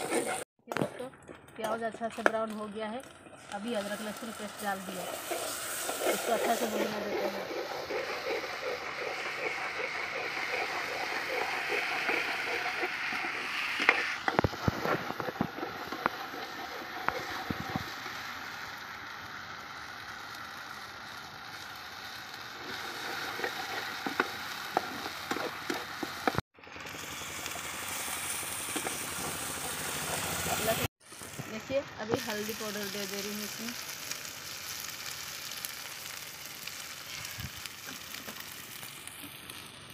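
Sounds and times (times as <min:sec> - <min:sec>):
onions sizzling in a pan: 0:01.6 - 0:39.9.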